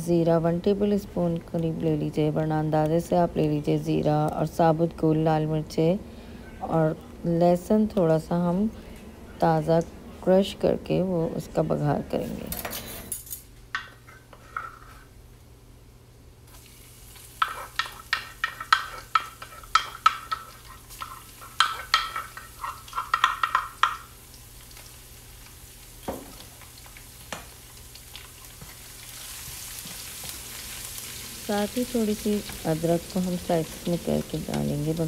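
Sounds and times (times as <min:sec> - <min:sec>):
garlic sizzling in oil: 0:16.5 - 0:35.0.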